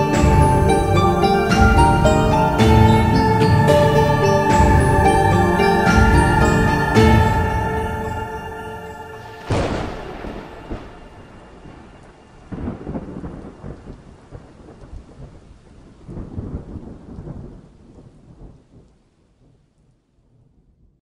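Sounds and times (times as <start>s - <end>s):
thunder rumbling: 0.0s - 18.9s
steady rain: 0.0s - 20.9s.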